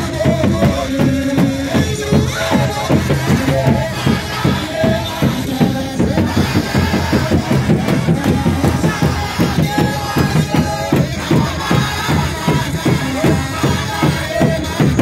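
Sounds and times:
congregation singing a hymn: 0.0 - 15.0
drum beat: 0.0 - 15.0.

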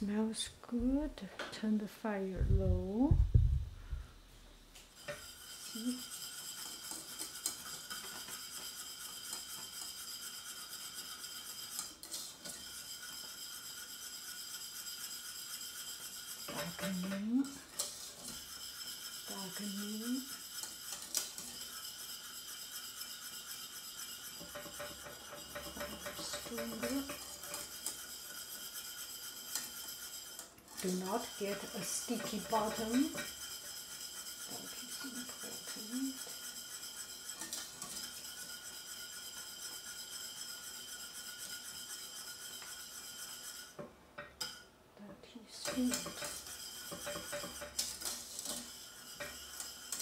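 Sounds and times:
whisk scraping in a saucepan: 4.8 - 44.7, 45.4 - 50.0
caramel bubbling: 5.0 - 43.8.

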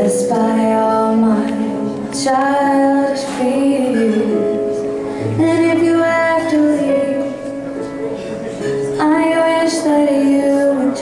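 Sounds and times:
woman singing a slow ballad: 0.0 - 7.7, 8.8 - 11.0
live band accompaniment: 0.0 - 11.0.

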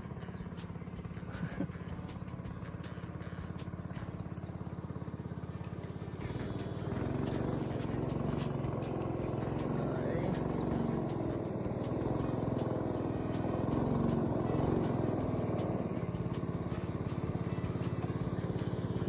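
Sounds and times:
small boat engine throbbing: 0.0 - 19.0.

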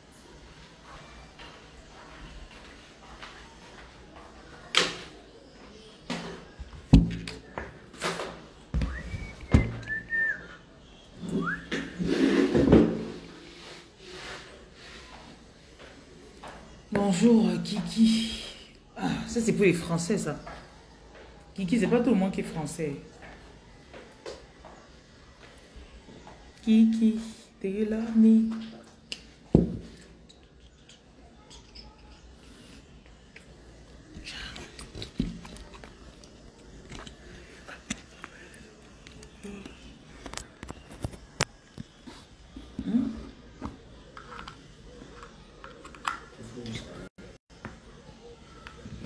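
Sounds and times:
person whistling: 8.9 - 10.6, 11.3 - 11.8.

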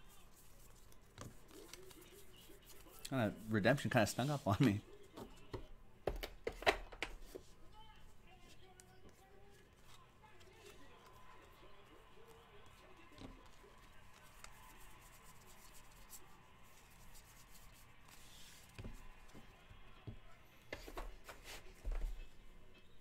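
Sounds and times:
cards clicking: 0.7 - 3.1.

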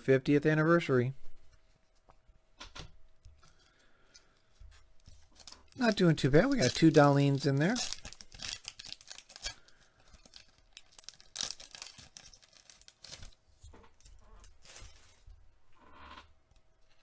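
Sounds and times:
cards shuffling: 4.8 - 13.4
paper rustling and tearing: 5.0 - 13.4, 14.4 - 15.3.

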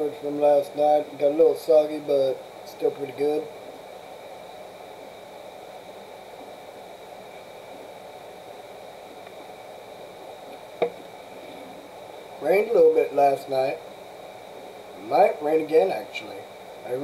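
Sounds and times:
room noise: 0.0 - 17.0.

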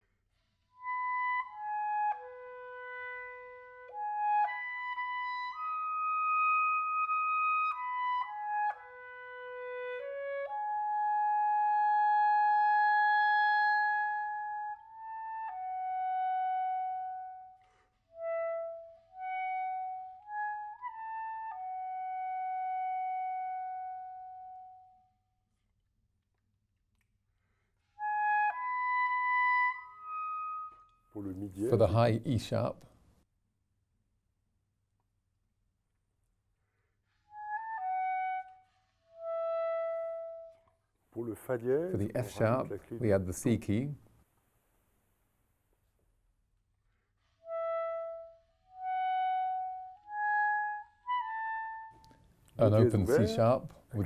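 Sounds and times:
solo clarinet playing: 0.8 - 25.0, 28.0 - 31.8, 37.4 - 40.8, 47.2 - 53.7.

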